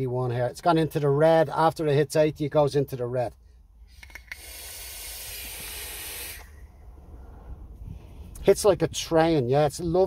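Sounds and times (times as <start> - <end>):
air hissing through vape: 4.0 - 6.7.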